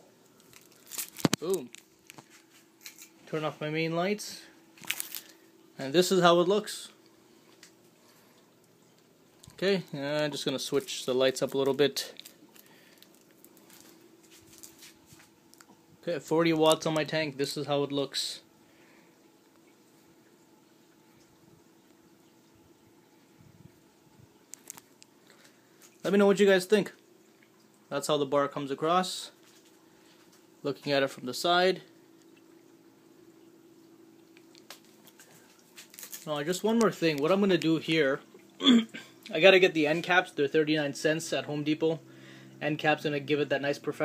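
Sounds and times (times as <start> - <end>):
aquarium hum: 0.0 - 44.0.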